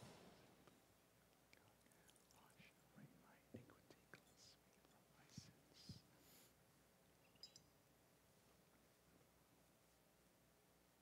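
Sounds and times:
faint whispered prayer: 1.4 - 6.6.

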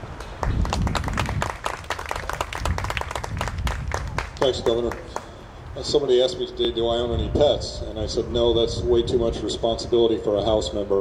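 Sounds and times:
people applauding: 0.1 - 5.3.

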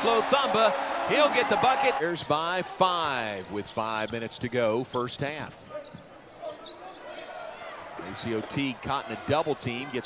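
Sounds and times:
arena crowd hubbub: 0.0 - 10.0.

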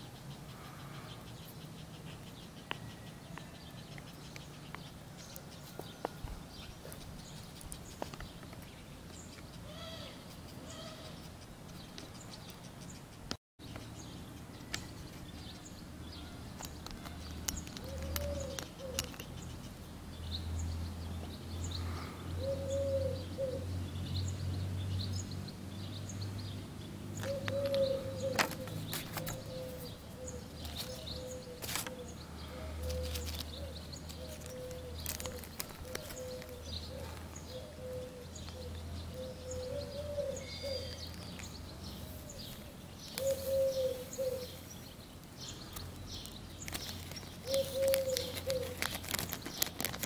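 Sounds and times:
small bird chirping: 0.0 - 50.0
bird cooing: 17.0 - 19.2, 21.9 - 23.7, 27.2 - 41.4, 42.1 - 44.6, 47.4 - 49.0
plastic bag crinkling: 34.4 - 36.6, 46.6 - 50.0.

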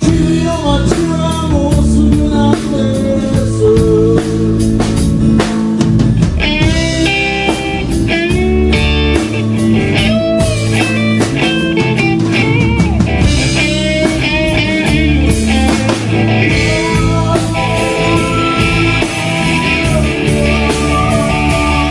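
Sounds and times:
bass guitar: 0.0 - 21.9
drum kit: 0.0 - 21.9
electric guitar lead: 0.0 - 21.9.

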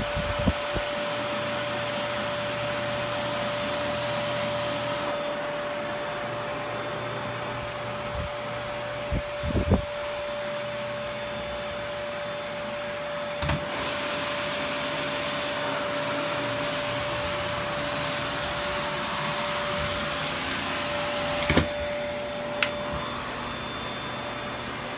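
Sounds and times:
vacuum cleaner whining: 0.0 - 24.9.

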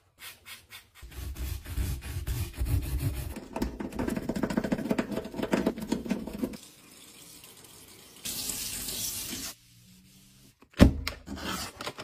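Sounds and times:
brush scrubbing in a sink: 0.0 - 6.6.

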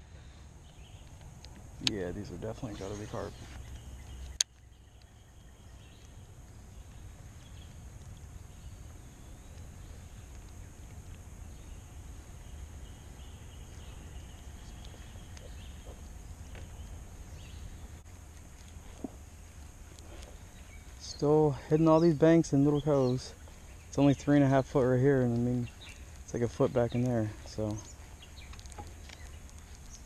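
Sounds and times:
steady low rumble: 0.0 - 30.0
faint ticks: 0.1 - 30.0.

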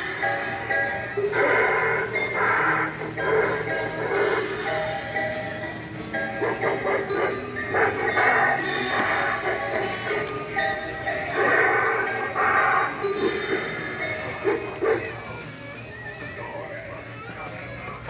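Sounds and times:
recorded music: 0.0 - 18.0
animal-like shrieks: 11.3 - 15.3.

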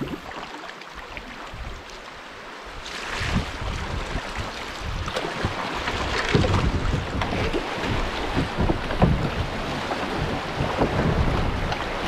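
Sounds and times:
river water rushing over rocks: 0.0 - 12.0
wind buffeting microphone: 2.7 - 12.0.

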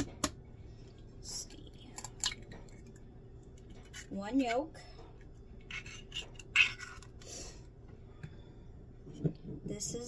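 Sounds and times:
eggshell scraping and clicking: 5.6 - 7.2.

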